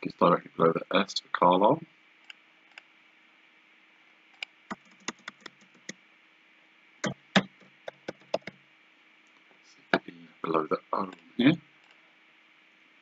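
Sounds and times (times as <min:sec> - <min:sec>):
keyboard keystrokes typing: 0:04.7 - 0:05.9, 0:07.0 - 0:08.6.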